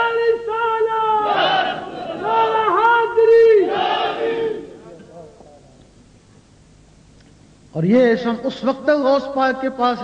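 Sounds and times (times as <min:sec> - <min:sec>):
crowd of men chanting: 0:01.2 - 0:02.8, 0:03.6 - 0:04.8.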